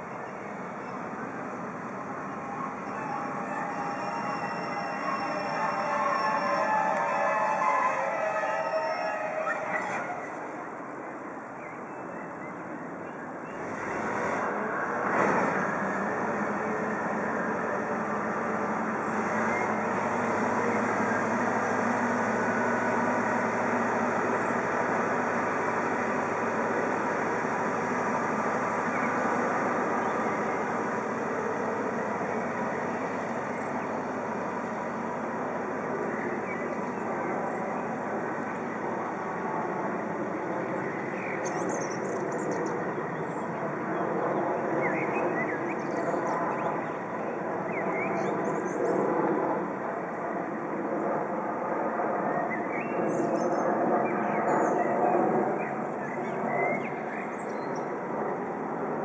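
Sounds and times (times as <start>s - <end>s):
diesel locomotive running: 0.0s - 11.6s, 13.2s - 50.3s
high squeal: 2.0s - 10.7s.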